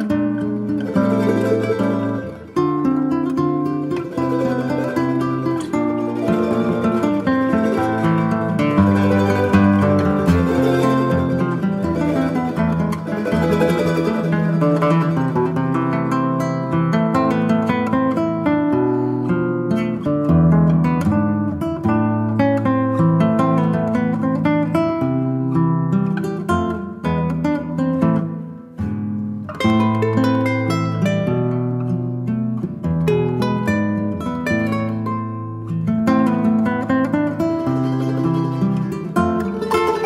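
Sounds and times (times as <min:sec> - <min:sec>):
folk music on plucked strings: 0:00.0 - 0:40.0.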